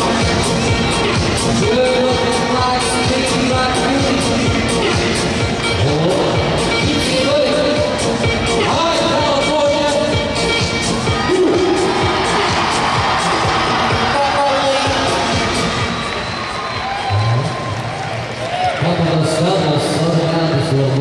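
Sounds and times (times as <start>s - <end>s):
crowd cheering and shouting: 0.0s - 7.8s, 8.4s - 21.0s
music over loudspeakers: 0.0s - 21.0s.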